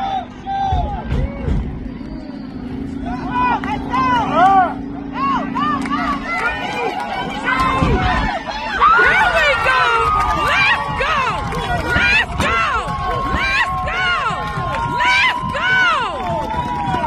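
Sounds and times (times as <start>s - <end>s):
spectators shouting and yelling: 0.0s - 17.0s
steady low hum: 0.0s - 17.0s.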